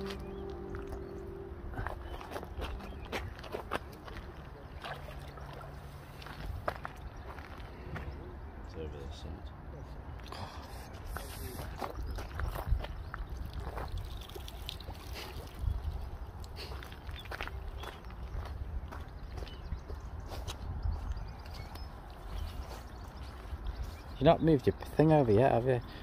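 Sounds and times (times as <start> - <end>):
faint water sloshing: 0.0 - 7.7
wind rumbling on microphone: 11.4 - 24.2.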